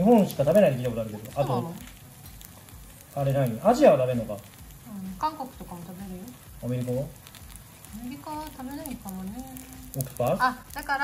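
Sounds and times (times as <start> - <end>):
faint sizzle of frying in oil: 0.0 - 11.0
people conversing: 0.0 - 11.0.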